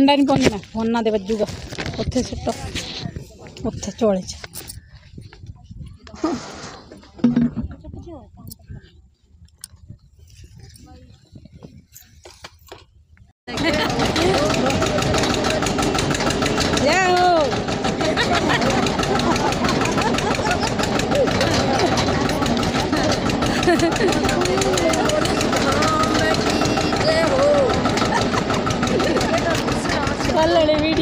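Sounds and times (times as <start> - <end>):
people talking: 0.0 - 4.7, 5.4 - 9.0, 13.5 - 31.0
tractor diesel engine running: 13.5 - 31.0.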